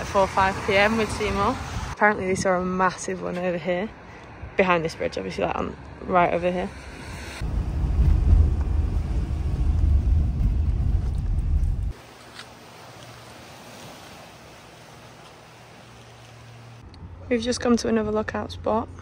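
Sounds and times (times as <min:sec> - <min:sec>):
wind buffeting microphone: 0:00.0 - 0:03.1, 0:05.5 - 0:12.0
sea washing on rocky shore: 0:11.9 - 0:16.8.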